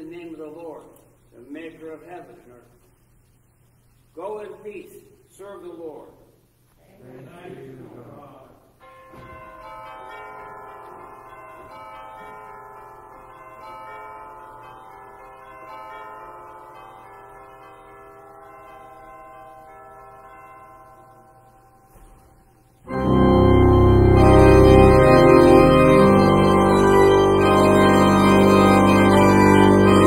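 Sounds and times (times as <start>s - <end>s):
person speaking: 0.0s - 2.8s, 4.1s - 8.7s.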